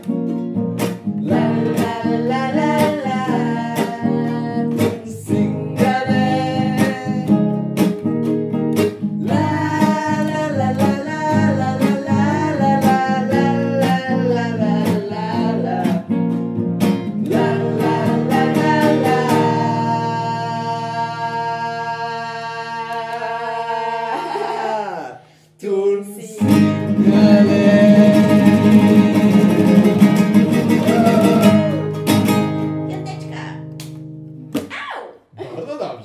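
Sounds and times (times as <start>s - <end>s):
strummed acoustic guitar: 0.0s - 22.8s, 26.4s - 34.6s
ukulele: 0.0s - 23.4s, 26.4s - 34.7s
man and woman singing: 1.0s - 7.7s, 9.1s - 16.4s, 17.1s - 32.2s.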